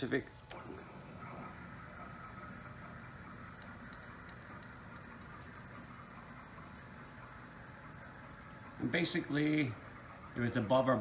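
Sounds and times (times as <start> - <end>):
stepper motor hum: 0.0 - 11.0.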